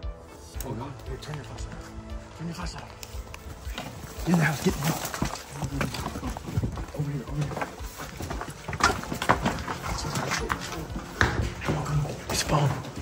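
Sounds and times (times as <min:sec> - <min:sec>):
hurried footsteps: 0:00.0 - 0:13.0
rustling: 0:02.7 - 0:13.0.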